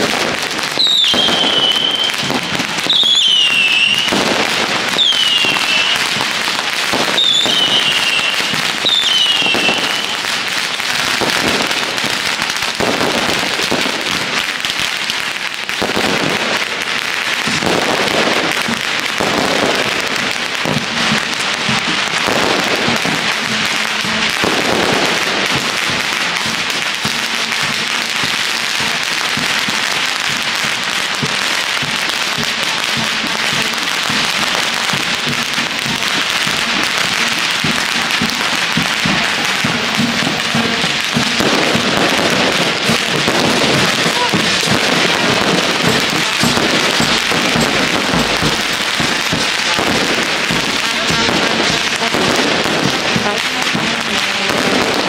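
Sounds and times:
firecrackers crackling: 0.0s - 55.0s.

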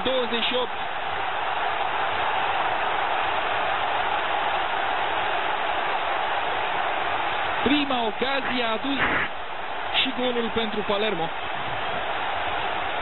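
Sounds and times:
stadium crowd cheering: 0.0s - 13.0s.

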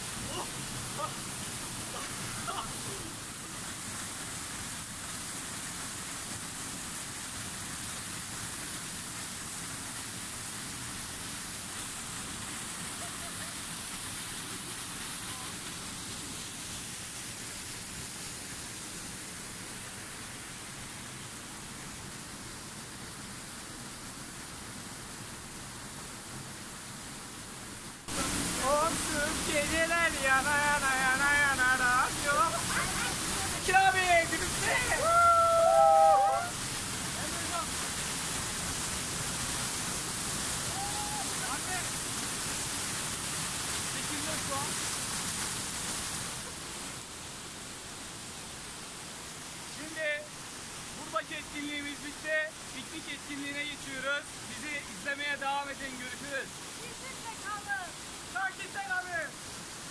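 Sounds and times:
waterfall roaring into river: 0.0s - 59.9s
person's voice wavering: 0.2s - 1.2s.

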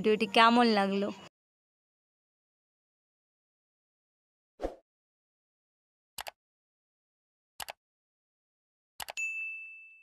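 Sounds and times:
bright bell ding: 9.2s - 10.0s.

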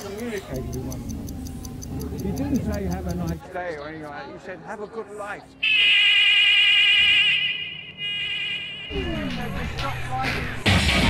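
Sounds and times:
bus buzzer warbling tone: 6.1s - 9.0s.

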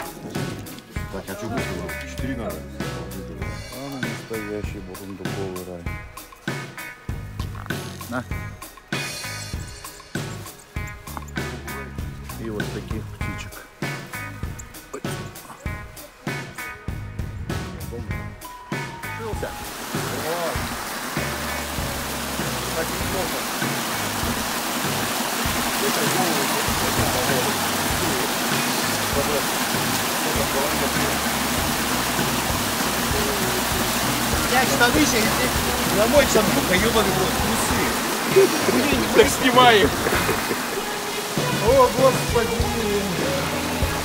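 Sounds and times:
background music with steady beat: 0.0s - 44.0s
stream rushing over rocks: 19.6s - 44.0s.

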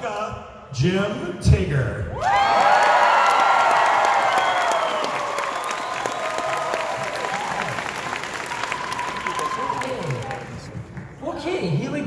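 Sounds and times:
audience cheering: 2.2s - 10.8s
audience clapping: 2.2s - 11.2s.

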